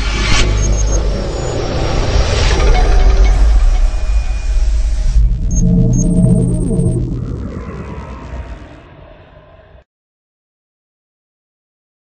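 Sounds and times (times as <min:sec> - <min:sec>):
deep rumbling sound effect: 0:00.0 - 0:09.8.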